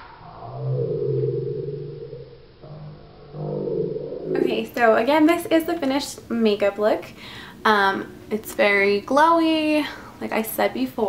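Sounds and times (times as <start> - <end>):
low drawn-out voice-like sound: 2.6 - 4.5.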